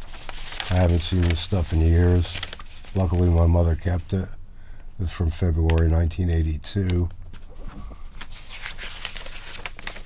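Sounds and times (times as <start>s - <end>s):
paper rustling and crinkling: 0.0s - 4.1s, 6.9s - 10.0s.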